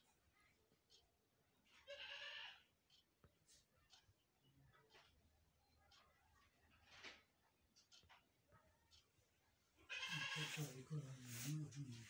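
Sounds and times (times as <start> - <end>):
person speaking: 10.2 - 12.0.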